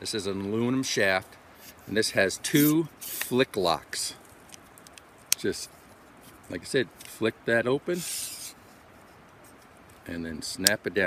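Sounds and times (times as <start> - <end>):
metal pole section scraping: 1.6 - 3.4, 8.0 - 8.6.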